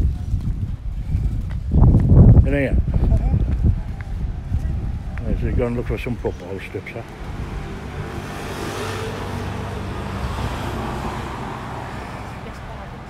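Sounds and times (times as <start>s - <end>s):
vehicle passing: 3.6s - 13.0s.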